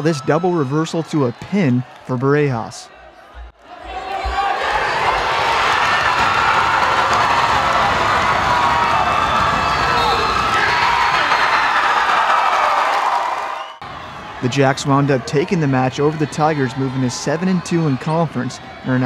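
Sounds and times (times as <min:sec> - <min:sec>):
crowd cheering and shouting: 0:00.0 - 0:19.0.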